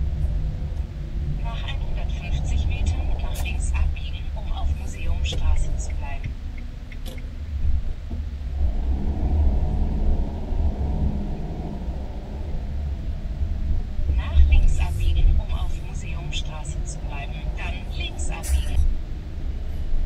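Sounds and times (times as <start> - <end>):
engine and road rumble: 0.0 - 20.0
indistinct voices: 1.4 - 6.4, 14.1 - 18.9.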